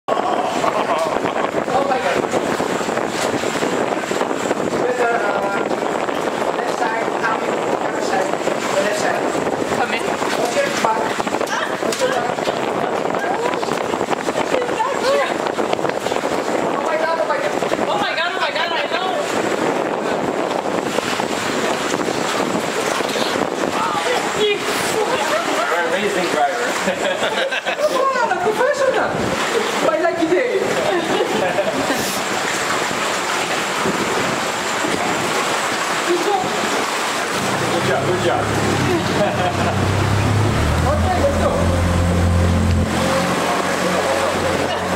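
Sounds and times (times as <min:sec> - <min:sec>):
boat moving through water: 0:00.0 - 0:44.9
people talking: 0:00.2 - 0:02.3, 0:04.8 - 0:05.8, 0:06.5 - 0:13.8, 0:14.4 - 0:15.5, 0:16.7 - 0:19.4, 0:23.7 - 0:32.2, 0:36.1 - 0:36.8, 0:37.4 - 0:44.9
boat engine humming: 0:32.2 - 0:44.9.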